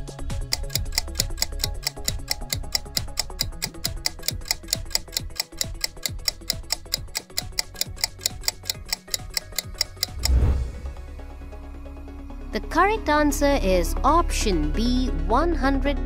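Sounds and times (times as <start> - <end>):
rapid timer ticks: 0.0 - 10.6
low music bed: 0.0 - 16.0.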